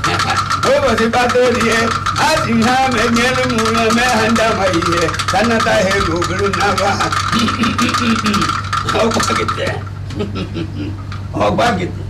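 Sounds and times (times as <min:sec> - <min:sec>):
hand rattle shaking: 0:00.0 - 0:10.0
steady hum: 0:00.0 - 0:12.0.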